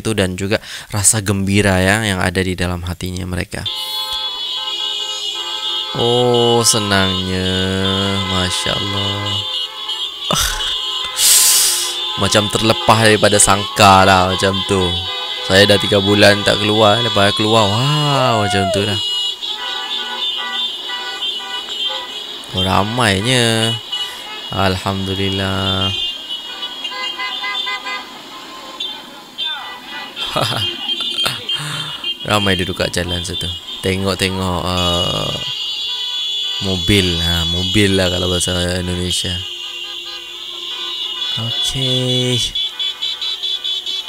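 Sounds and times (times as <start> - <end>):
car horns honking: 3.5 - 44.0.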